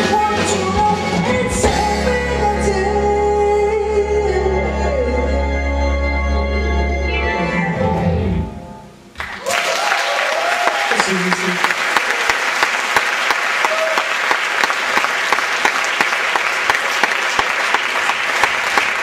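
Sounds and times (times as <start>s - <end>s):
audience applauding: 9.2s - 19.0s
cheering calls: 9.3s - 19.0s.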